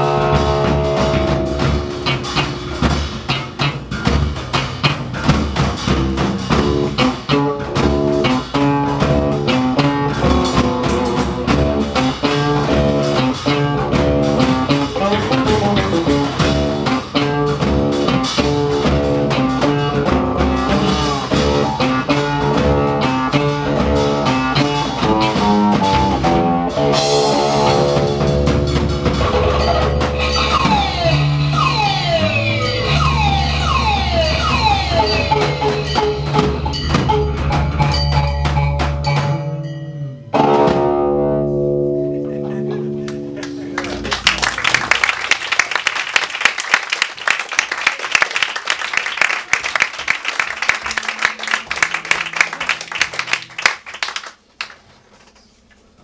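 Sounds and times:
fretless electric bass: 0:00.0 - 0:44.2
plucked stringed instrument: 0:29.1 - 0:43.8.

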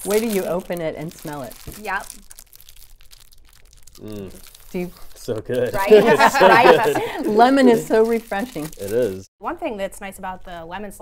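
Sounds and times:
plastic wrapper crinkling: 0:00.0 - 0:05.6, 0:07.3 - 0:09.3.

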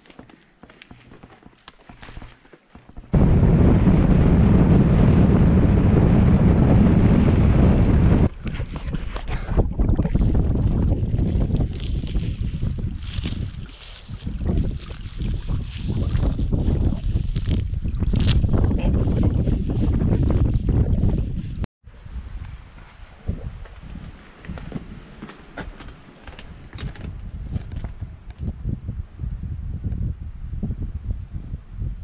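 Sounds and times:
wind buffeting microphone: 0:03.1 - 0:32.0.

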